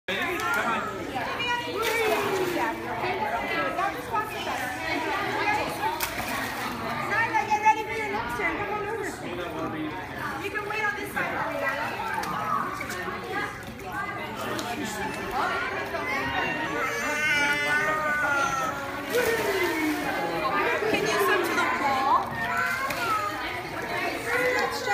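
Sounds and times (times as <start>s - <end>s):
children and adults chattering: 0.1s - 24.9s
water splashing: 1.6s - 3.2s, 5.1s - 7.2s, 17.2s - 24.9s.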